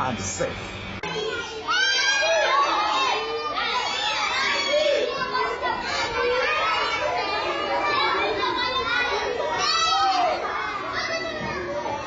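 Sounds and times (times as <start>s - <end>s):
children calling and shouting: 1.0s - 12.0s.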